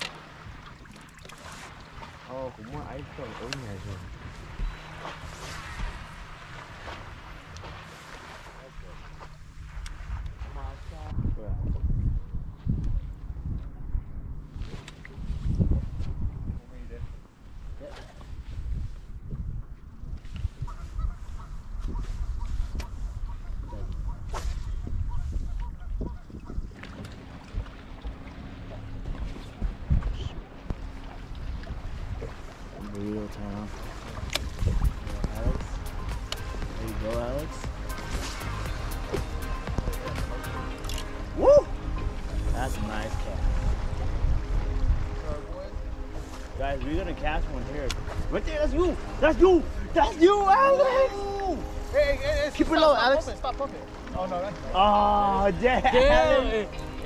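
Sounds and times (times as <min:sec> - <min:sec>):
waves lapping at boat hull: 0:00.0 - 0:11.2, 0:20.2 - 0:57.0
water: 0:00.0 - 0:57.0
wind: 0:00.0 - 0:57.0.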